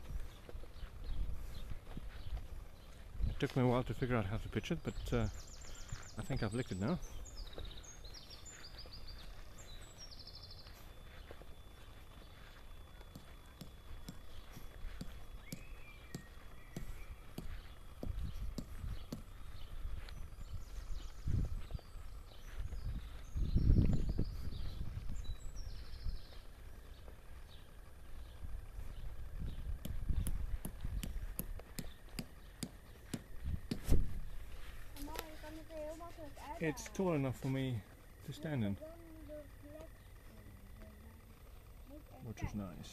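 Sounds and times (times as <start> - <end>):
birds chirping: 0.0 - 42.9
footsteps on grass: 0.0 - 42.9.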